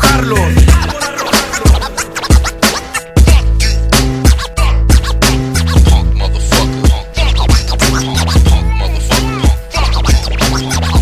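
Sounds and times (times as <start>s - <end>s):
hip hop drum hits: 0.0s - 11.0s
turntable scratching: 0.0s - 11.0s.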